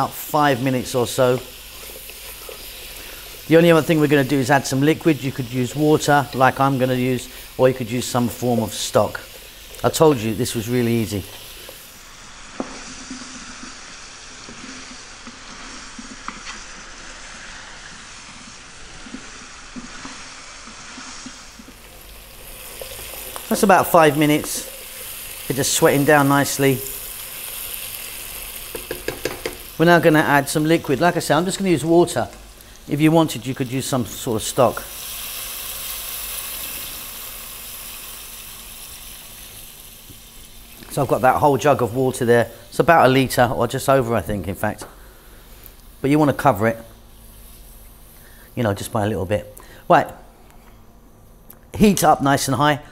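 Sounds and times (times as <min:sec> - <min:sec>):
vegetables sizzling in oil: 0:00.0 - 0:49.0.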